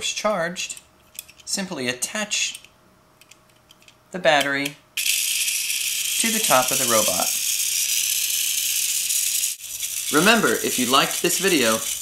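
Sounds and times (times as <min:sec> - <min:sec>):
toy electric motor whirring: 0:05.0 - 0:12.0.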